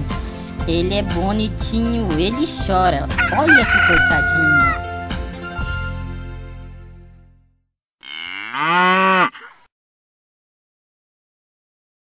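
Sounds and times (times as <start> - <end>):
cow mooing: 8.0 - 9.7.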